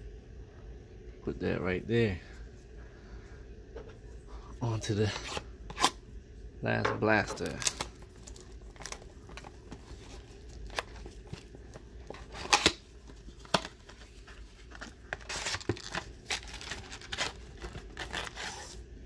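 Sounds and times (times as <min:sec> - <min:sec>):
foil packs rustling: 0:07.1 - 0:18.8
plastic wrap crinkling and tearing: 0:07.2 - 0:18.9.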